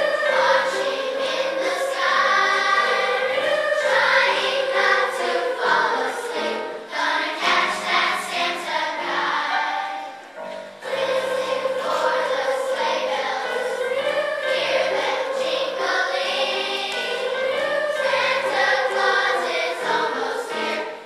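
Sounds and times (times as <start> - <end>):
children's choir singing: 0.0 - 21.0.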